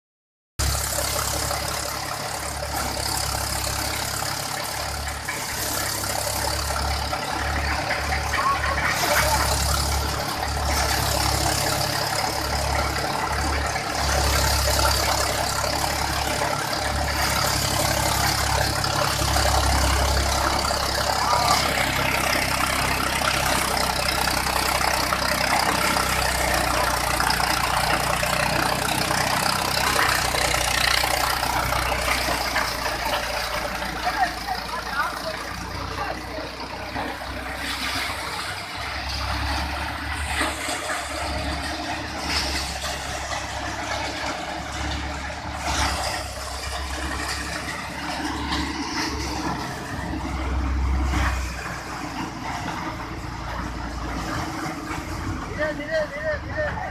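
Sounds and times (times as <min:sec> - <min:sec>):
engine low uneven rumble: 0:00.6 - 0:56.9
thresher machine running: 0:00.6 - 0:56.9.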